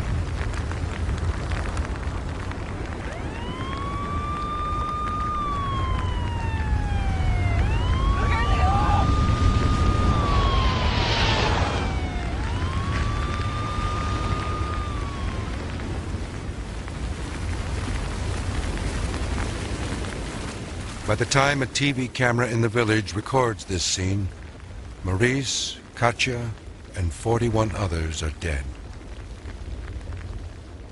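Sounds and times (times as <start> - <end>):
steady low rumble: 0.0 - 30.9
emergency vehicle siren wailing: 1.6 - 17.5
hiss burst: 9.2 - 16.1.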